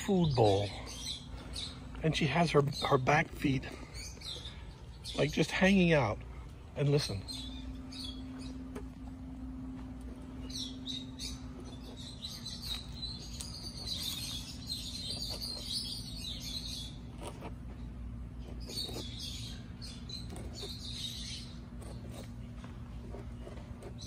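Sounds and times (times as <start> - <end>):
tortoise crunching dry pellets: 9.4 - 24.0.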